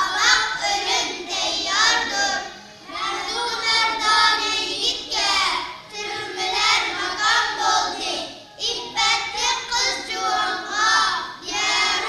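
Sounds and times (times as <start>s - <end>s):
boys singing together: 0.0s - 12.0s.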